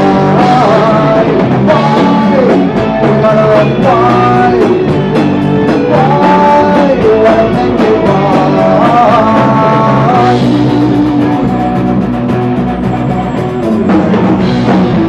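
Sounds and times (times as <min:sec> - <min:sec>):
person singing: 0:00.0 - 0:12.0
drum kit with cymbal hits: 0:00.0 - 0:15.0
electric guitars: 0:00.0 - 0:15.0.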